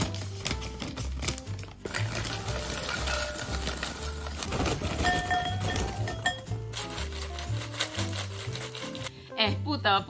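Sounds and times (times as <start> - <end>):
snack sticks poured into glass bowl: 1.4 - 4.5, 5.5 - 9.1.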